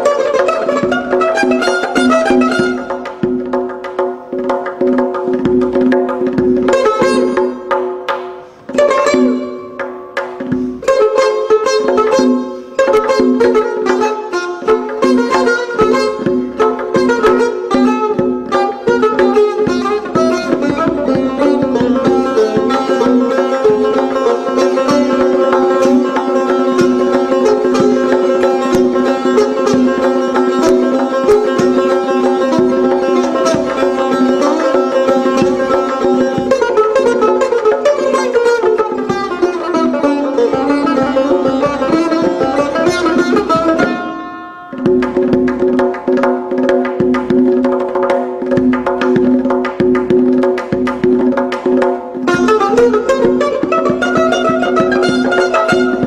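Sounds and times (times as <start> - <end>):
plucked lute solo: 0.0 - 56.0.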